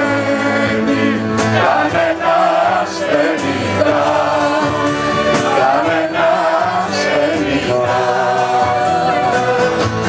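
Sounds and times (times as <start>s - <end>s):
acoustic band accompaniment: 0.0s - 10.0s
woman singing into microphone: 3.0s - 9.7s.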